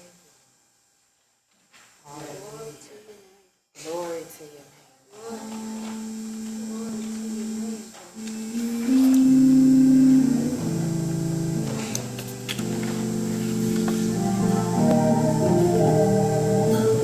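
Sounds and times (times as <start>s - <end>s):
organ playing slow chords: 5.4s - 17.0s.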